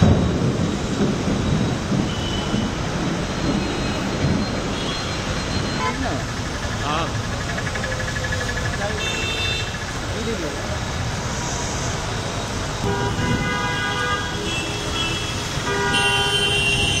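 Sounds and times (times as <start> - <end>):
heavy rain pouring on road: 0.0 - 17.0
vehicles passing on wet road: 0.0 - 17.0
car horns: 1.9 - 6.4, 8.8 - 9.9, 12.8 - 17.0.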